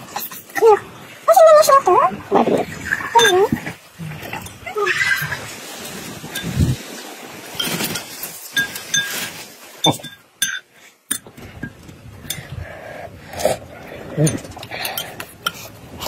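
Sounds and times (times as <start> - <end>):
glassware and bowls clinking: 2.9 - 3.7, 6.3 - 6.8, 7.5 - 12.5, 14.2 - 15.7.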